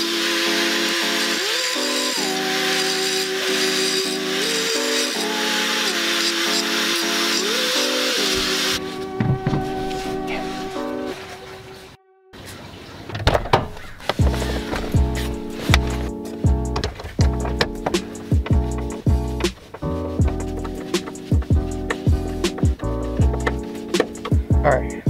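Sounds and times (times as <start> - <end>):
background music with steady beat: 14.2 - 25.0.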